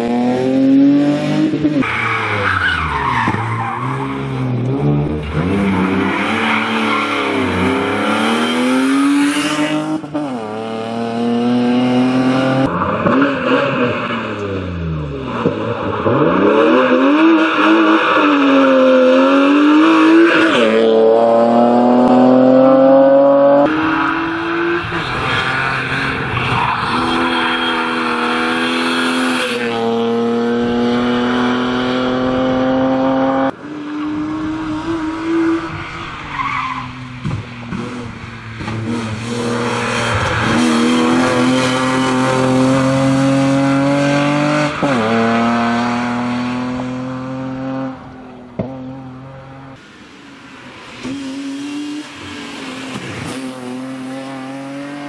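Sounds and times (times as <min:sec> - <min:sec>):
tyres skidding on tarmac: 0:01.5 - 0:10.4, 0:12.6 - 0:21.0, 0:23.6 - 0:30.0, 0:33.5 - 0:47.1
car engine revving hard: 0:04.1 - 0:35.7, 0:37.7 - 0:49.8.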